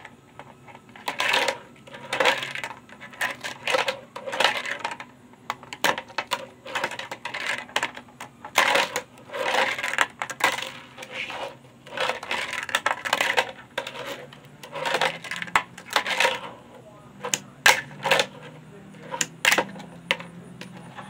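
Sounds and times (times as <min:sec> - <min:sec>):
small wheels rolling: 0:00.0 - 0:21.0.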